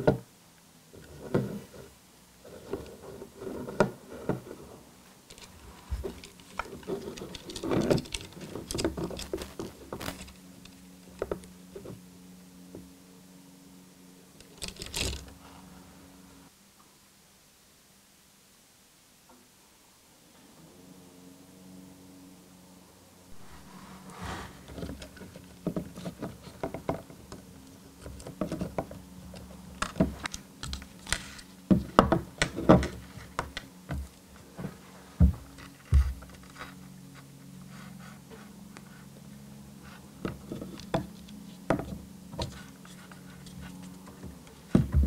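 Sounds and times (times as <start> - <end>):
fabric strap rustling: 5.3 - 10.9, 23.3 - 25.4
small metal clicks: 5.3 - 11.5, 14.4 - 15.4, 24.8 - 33.7.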